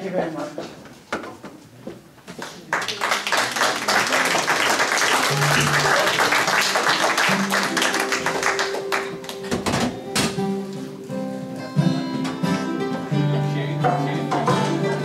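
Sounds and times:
audience applause: 2.4s - 9.6s
held guitar notes: 5.2s - 15.0s.

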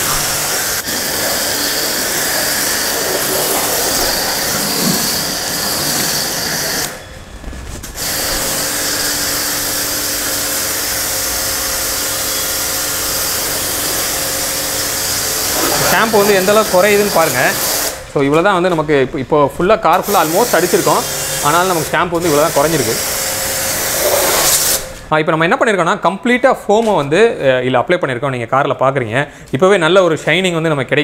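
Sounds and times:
foam spray hissing: 0.0s - 7.0s, 20.0s - 25.0s
pressure washer pump humming: 0.0s - 18.2s, 19.9s - 25.0s.

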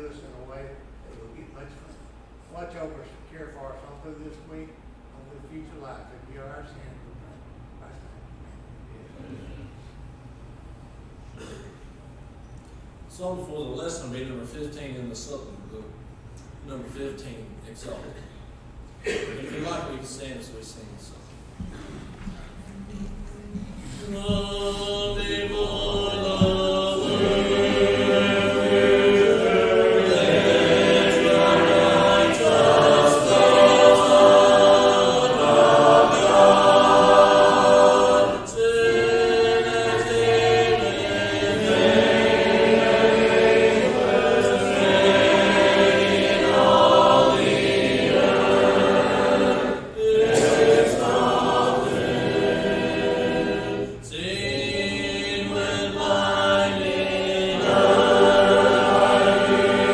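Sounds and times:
congregation singing a hymn: 21.6s - 59.9s.

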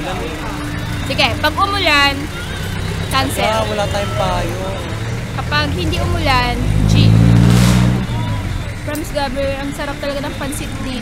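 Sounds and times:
vehicle engine passing by: 0.0s - 11.0s.

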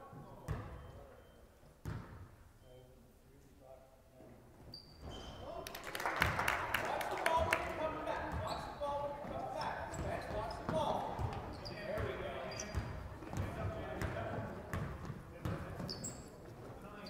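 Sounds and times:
voices echoing in gym: 0.0s - 17.0s.

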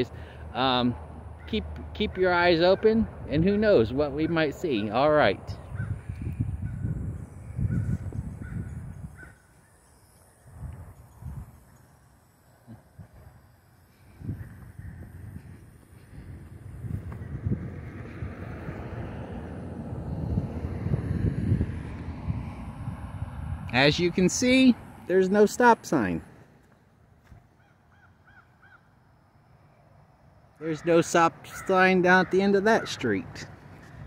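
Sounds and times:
wind rumble on microphone: 2.4s - 9.5s, 10.2s - 11.8s, 12.7s - 25.2s
crow cawing: 7.7s - 9.8s, 27.6s - 28.9s, 30.7s - 33.2s
car approaching: 14.5s - 27.3s.

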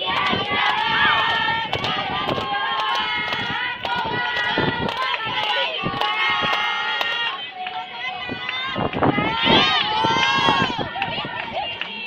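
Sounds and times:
hand claps: 0.0s - 7.8s.

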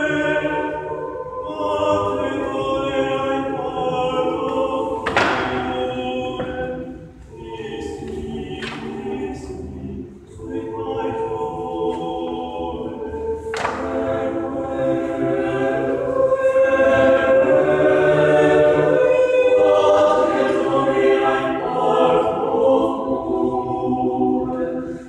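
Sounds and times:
choir singing a cappella: 0.0s - 25.0s.

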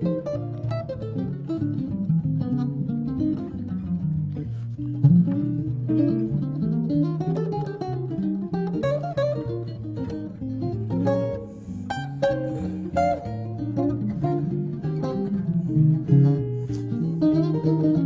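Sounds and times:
two jazz guitars playing: 0.0s - 18.0s.

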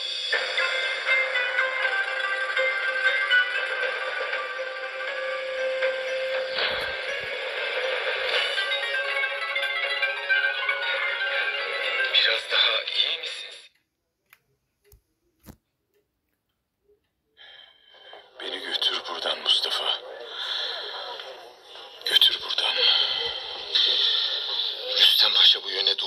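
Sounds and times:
music through small radio speaker: 0.0s - 26.0s.

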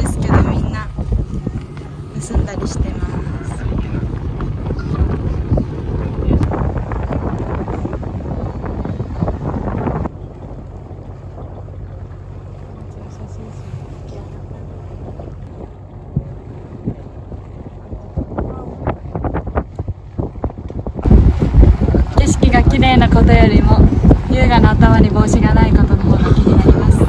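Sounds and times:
boat engine hum: 0.0s - 27.0s
wind buffeting microphone: 0.0s - 27.0s.

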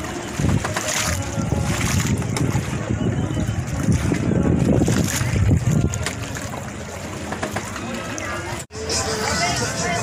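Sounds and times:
wind buffeting microphone: 0.2s - 6.8s.

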